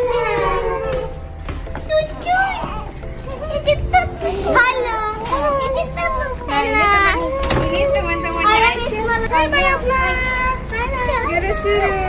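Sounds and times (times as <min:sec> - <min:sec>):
background music: 0:00.0 - 0:12.0
children chattering and squealing: 0:00.0 - 0:12.0.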